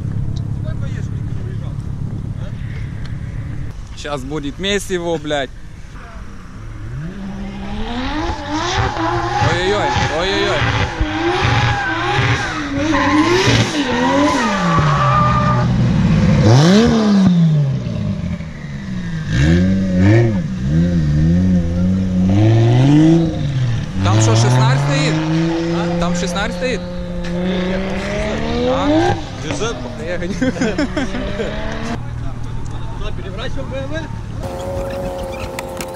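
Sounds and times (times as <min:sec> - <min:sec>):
car engines revving: 0:00.0 - 0:35.9
tyres squealing: 0:34.4 - 0:35.9.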